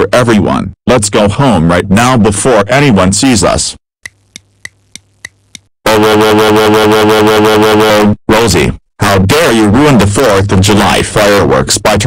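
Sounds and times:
clock ticking: 4.0 - 5.7.

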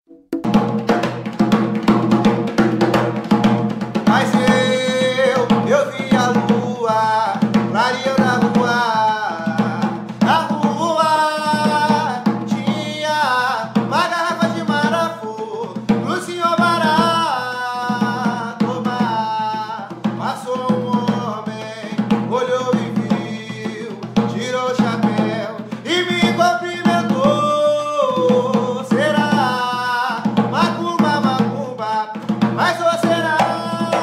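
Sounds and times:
hand drum rhythm: 0.1 - 34.0
man singing a chant: 4.0 - 34.0.

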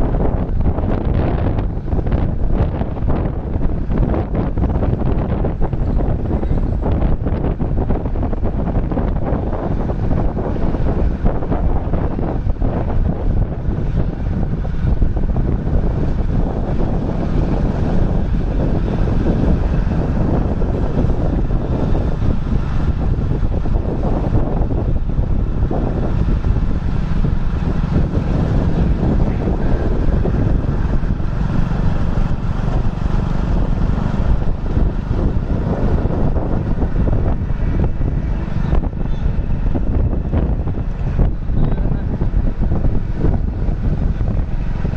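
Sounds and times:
wind buffeting microphone: 0.0 - 44.9.

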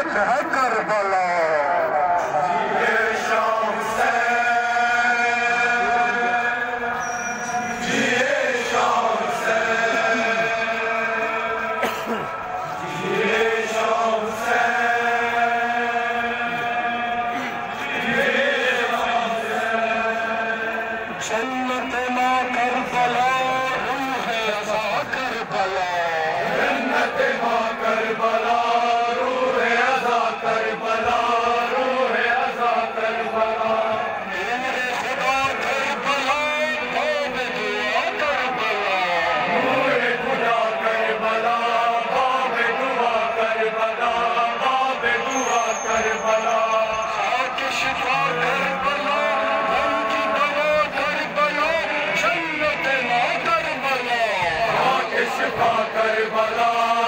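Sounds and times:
men chanting a lament: 0.0 - 57.0.

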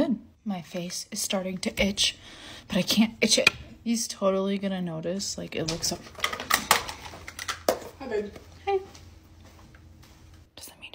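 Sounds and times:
makeup items clicking on a desk: 5.7 - 8.0.

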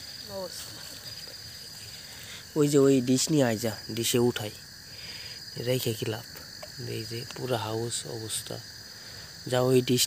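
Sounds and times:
crickets chirring: 0.0 - 10.0
people talking: 0.2 - 1.7.

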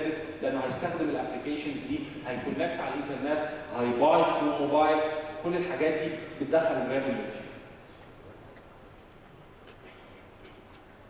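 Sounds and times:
low hiss of hall: 0.0 - 11.0.

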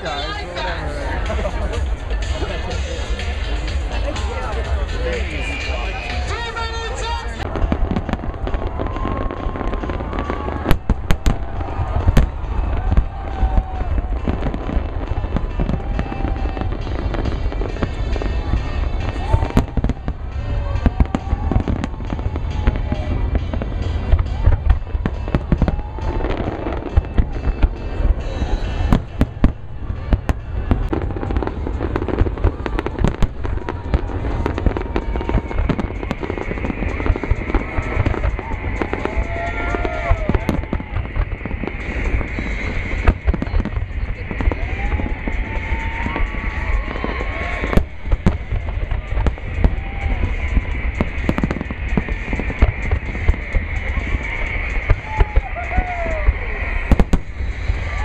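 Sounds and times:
fireworks bangs and booms: 1.1 - 58.0
low rumble: 7.3 - 58.0.

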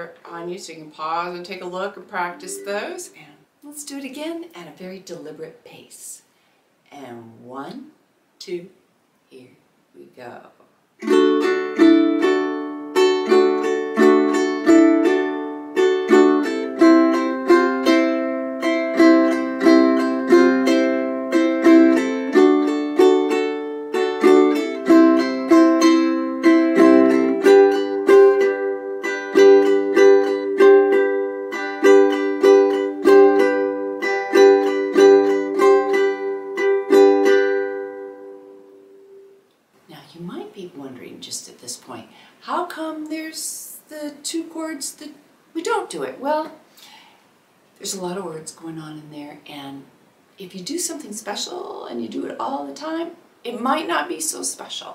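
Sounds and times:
ukulele strumming chords: 2.2 - 3.1, 11.0 - 39.5.

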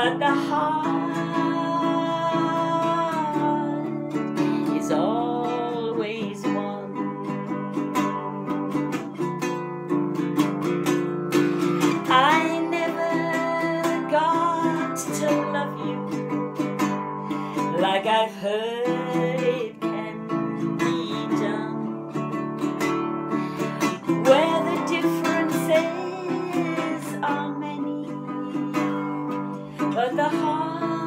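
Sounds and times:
person singing: 0.0 - 31.0
ukulele strumming: 0.0 - 31.0.

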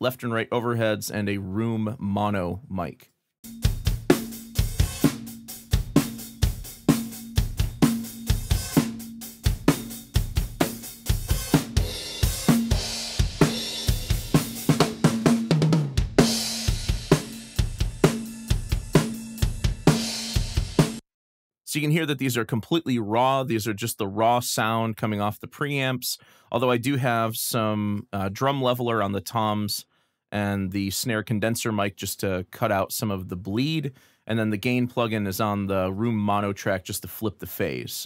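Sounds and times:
tom fill: 0.0 - 21.0
drum kit groove: 3.4 - 21.0.

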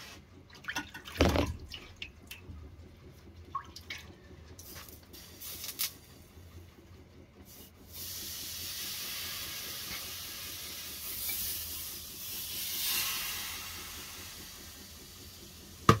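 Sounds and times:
steam hissing and sizzling: 7.5 - 15.9.

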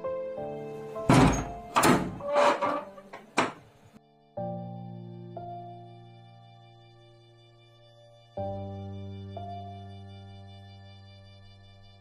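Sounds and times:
soft background music: 0.0 - 12.0
door latch thunks: 1.1 - 3.6.

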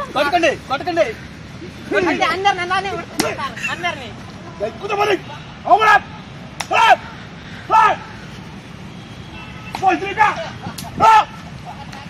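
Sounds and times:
person shouting calls: 4.8 - 8.1, 9.8 - 11.4.

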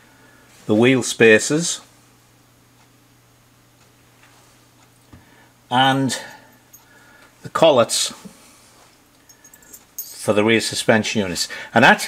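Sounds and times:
faint low hum: 0.0 - 12.0
soft ticks: 2.8 - 3.0, 3.8 - 5.0.

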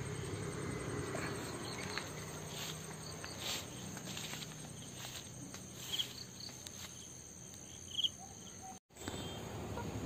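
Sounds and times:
insects trilling: 0.0 - 9.4.

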